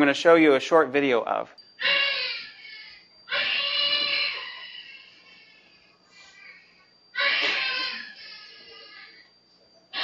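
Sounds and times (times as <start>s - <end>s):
newborn baby crying: 1.8s - 5.7s, 7.2s - 9.2s.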